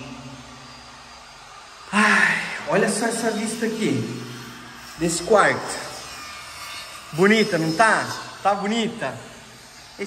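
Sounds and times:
man speaking: 1.9 - 4.2, 7.2 - 9.3.

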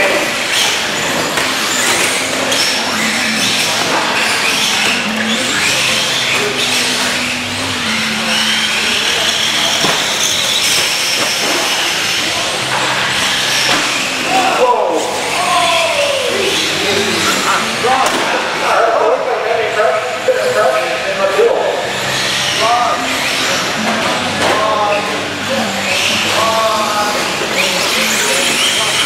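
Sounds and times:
toy car motors whining: 0.0 - 18.0, 20.2 - 29.0
chatter of voices in a hall: 0.0 - 29.0.

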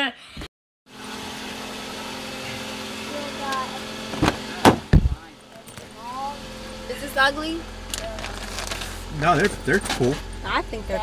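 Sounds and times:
steady mechanical hum: 0.9 - 11.0.

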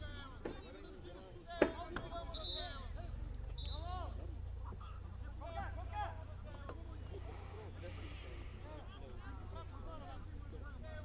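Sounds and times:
players calling out: 0.0 - 11.0.

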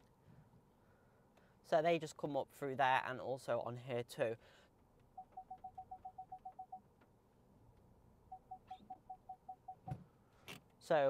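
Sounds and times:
parking sensor rapid beeps: 5.2 - 6.8, 8.3 - 10.0.

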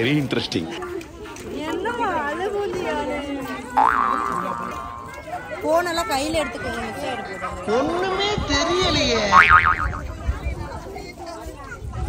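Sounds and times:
cartoon boing spring sound: 3.8 - 5.1, 9.3 - 10.0.

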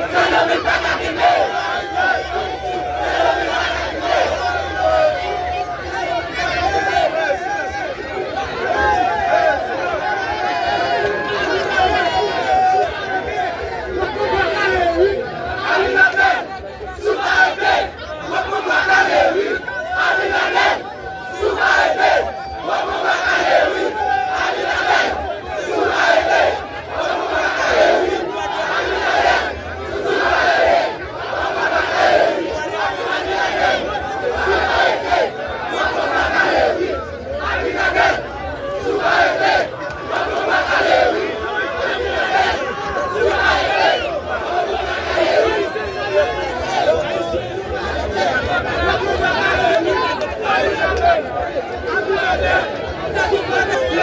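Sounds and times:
large crowd shouting and cheering: 0.0 - 54.0.

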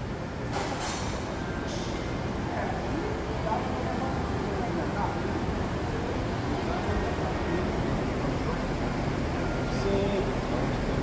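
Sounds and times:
low workshop rumble: 0.0 - 11.0
distant men talking: 2.3 - 11.0.

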